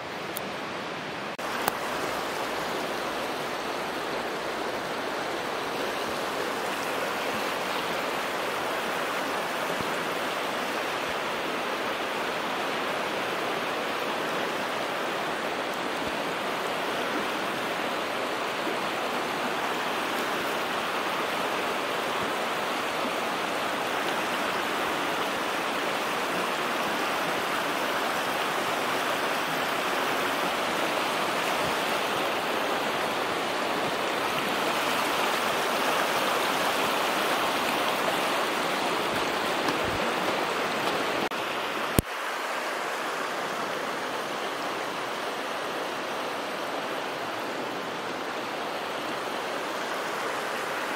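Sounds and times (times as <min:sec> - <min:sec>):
water flowing over stones: 0:00.3 - 0:50.9.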